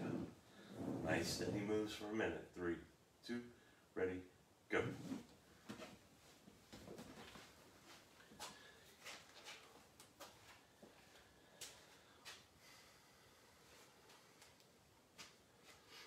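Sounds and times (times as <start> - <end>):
shuffling on floor mat: 0.0 - 1.7, 4.9 - 11.3.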